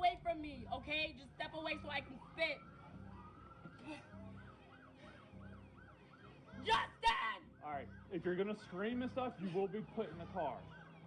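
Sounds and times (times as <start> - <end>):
faint siren yelping: 1.6 - 11.0.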